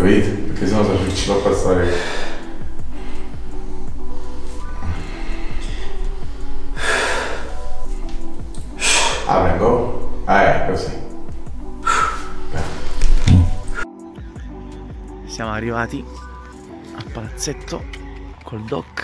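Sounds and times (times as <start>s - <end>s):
background music with sustained notes: 0.0s - 19.0s
man breathing sharply: 1.8s - 7.9s, 8.6s - 9.3s, 11.6s - 13.1s.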